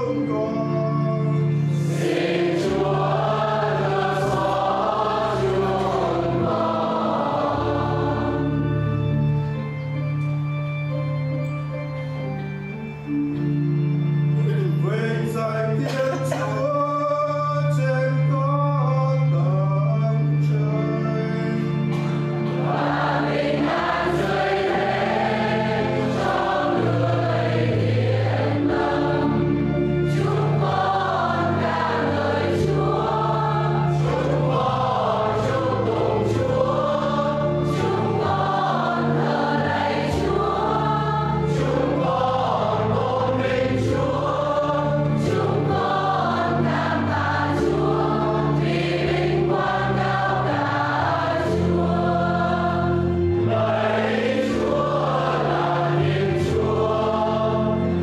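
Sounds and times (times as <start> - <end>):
choir singing a hymn: 0.0 - 58.0
low instrumental accompaniment: 0.0 - 58.0.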